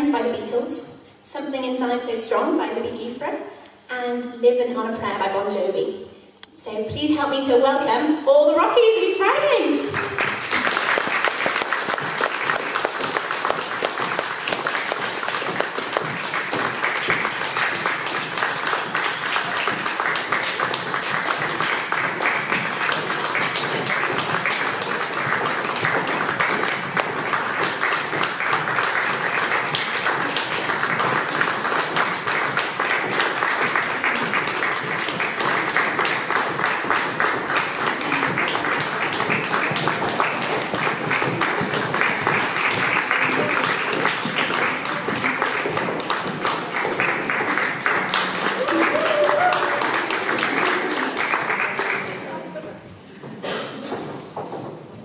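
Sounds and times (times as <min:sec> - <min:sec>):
audience applauding: 0:09.9 - 0:52.4.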